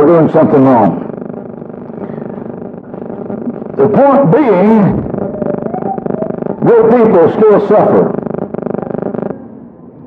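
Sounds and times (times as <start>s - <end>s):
steady buzzing hum: 0.0s - 9.4s.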